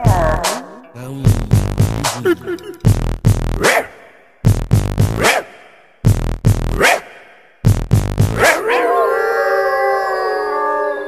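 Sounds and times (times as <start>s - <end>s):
heavy music beats: 0.0s - 8.4s
dog howling: 8.4s - 11.0s.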